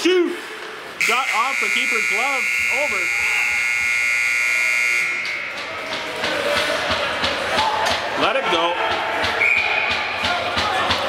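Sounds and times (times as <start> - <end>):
high-pitched horn buzz: 1.0 - 5.6.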